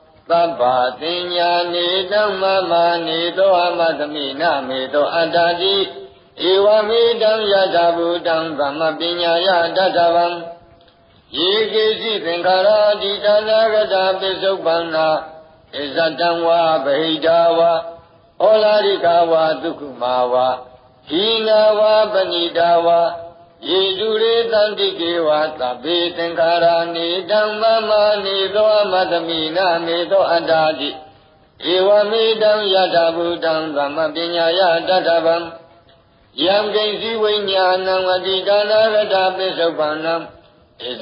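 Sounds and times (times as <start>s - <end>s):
monk chanting: 0.0s - 41.0s.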